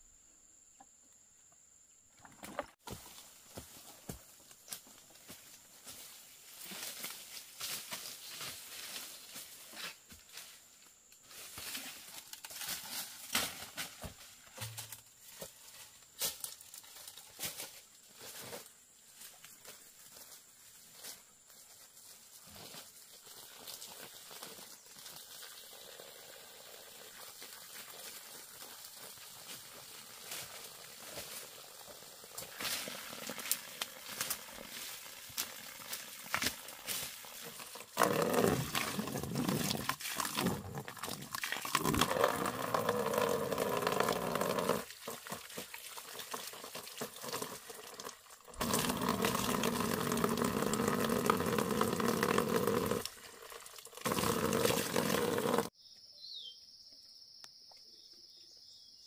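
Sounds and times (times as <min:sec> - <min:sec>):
water splashing into plastic basin: 0:38.0 - 0:55.7.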